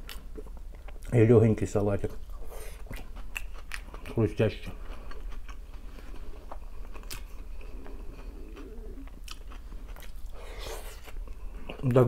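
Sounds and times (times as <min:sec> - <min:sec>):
person chewing crunchy salad: 0:00.0 - 0:01.1, 0:02.1 - 0:11.8.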